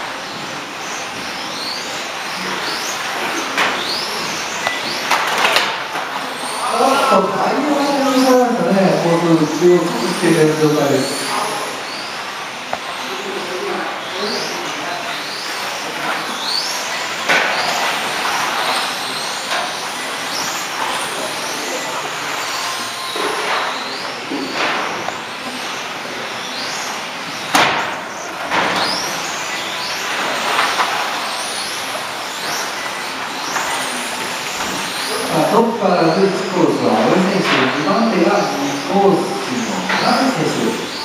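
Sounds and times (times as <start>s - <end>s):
rc car motors whining: 0.0s - 41.0s
steady high hiss: 6.1s - 14.6s.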